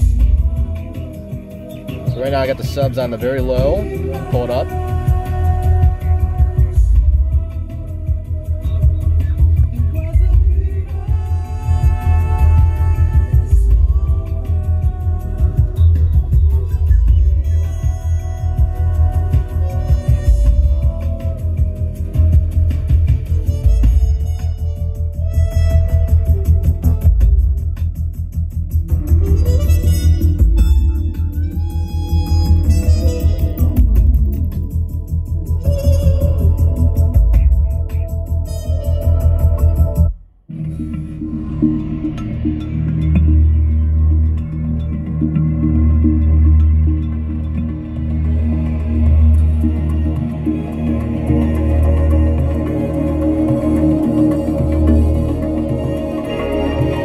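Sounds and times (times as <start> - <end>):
heavy bass: 0.0 - 57.0
loud music through car speakers: 0.0 - 57.0.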